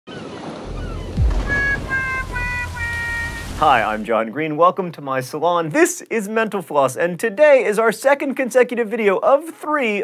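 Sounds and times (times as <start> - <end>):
ocean surf washing: 0.3 - 4.1
low falling boom: 0.7 - 4.1
sustained musical notes: 0.7 - 4.1.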